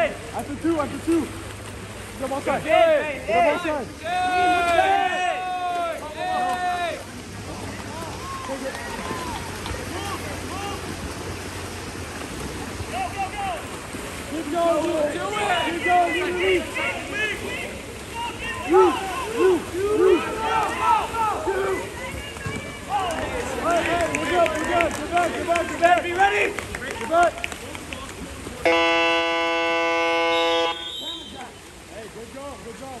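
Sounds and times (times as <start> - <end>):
people shouting: 2.6 - 7.0, 8.0 - 10.9, 14.4 - 26.5
game horn: 28.6 - 31.5.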